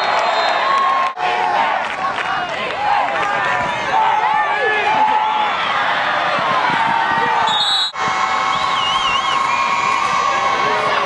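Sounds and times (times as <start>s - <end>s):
crowd cheering and shouting: 0.0s - 11.0s.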